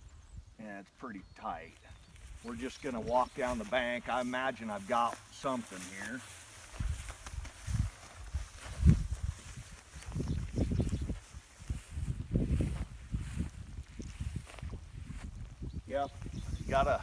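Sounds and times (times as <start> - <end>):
footsteps through tall grass: 1.7 - 17.0.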